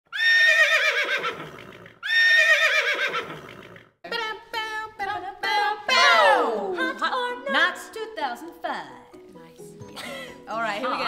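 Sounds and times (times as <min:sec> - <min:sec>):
horse whinnying: 0:00.1 - 0:04.0.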